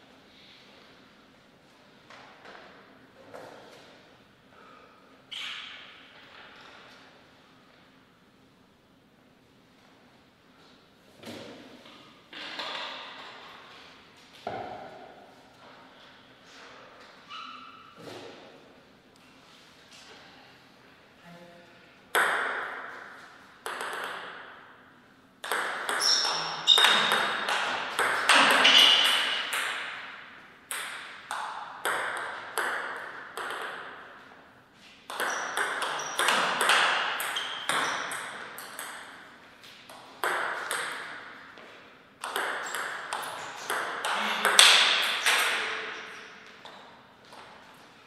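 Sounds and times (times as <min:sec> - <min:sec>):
table tennis ball being hit: 0:22.1 - 0:24.6, 0:25.4 - 0:34.2, 0:35.1 - 0:39.2, 0:39.9 - 0:41.5, 0:42.2 - 0:47.6
ball bouncing on table: 0:23.6 - 0:24.4, 0:25.4 - 0:30.1, 0:30.7 - 0:34.0, 0:35.1 - 0:39.1, 0:42.2 - 0:47.5.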